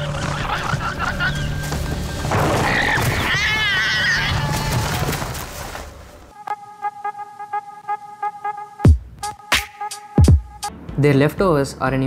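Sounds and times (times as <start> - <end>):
music of repeated notes: 6.4 - 10.8.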